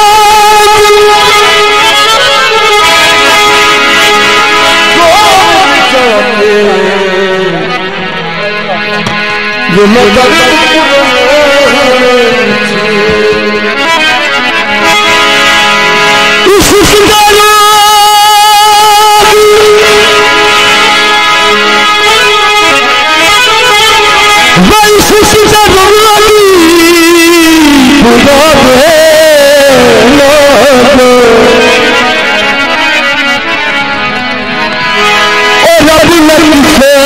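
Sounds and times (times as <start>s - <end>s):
harmonium chords and melody: 0.0s - 37.0s.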